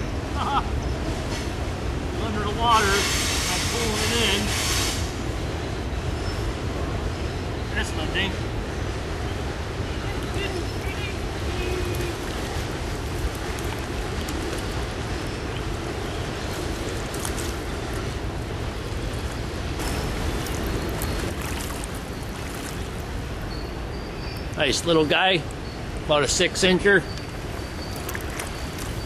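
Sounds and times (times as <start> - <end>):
stream water rushing: 0.0 - 29.0.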